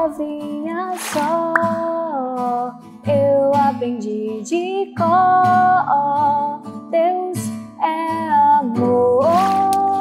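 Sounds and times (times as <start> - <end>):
acoustic guitar strumming: 0.0 - 3.8, 8.1 - 10.0
woman singing: 0.0 - 10.0.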